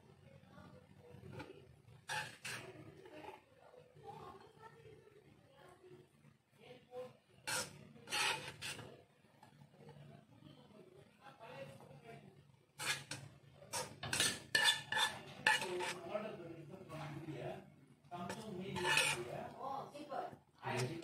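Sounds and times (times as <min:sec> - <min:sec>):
spoon scraping and clinking on plate: 0:01.3 - 0:02.7, 0:07.5 - 0:08.9, 0:12.8 - 0:16.1, 0:18.2 - 0:19.4.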